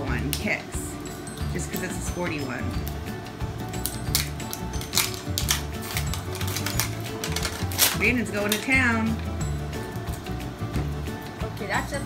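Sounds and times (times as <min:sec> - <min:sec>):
background music: 0:00.0 - 0:12.0
plastic wrapping crinkling and tearing: 0:03.8 - 0:08.8.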